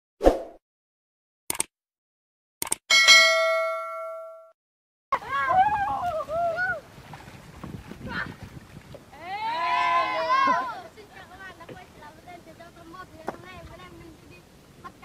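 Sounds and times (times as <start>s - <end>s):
sharp clicks: 1.5s - 1.7s, 2.6s - 2.8s
bell ding: 2.9s - 4.6s
low outdoor background noise: 9.0s - 15.0s.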